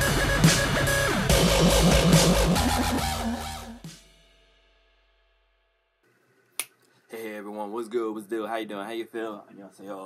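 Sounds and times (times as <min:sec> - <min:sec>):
man speaking: 0:07.1 - 0:10.0.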